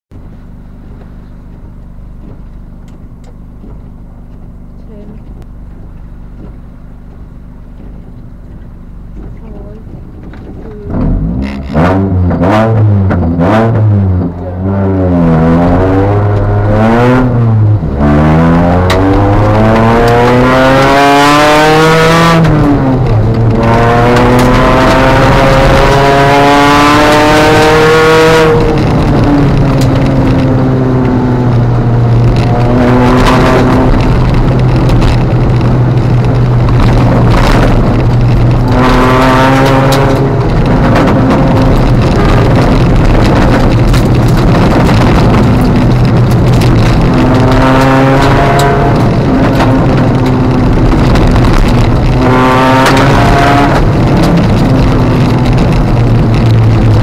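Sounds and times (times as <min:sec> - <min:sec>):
car engine revving through gears: 0:06.4 - 0:57.0.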